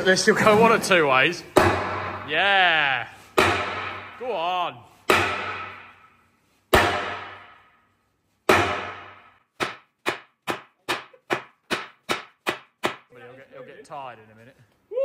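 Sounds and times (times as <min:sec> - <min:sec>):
sledgehammer striking steel: 0:01.5 - 0:07.8, 0:08.4 - 0:13.1.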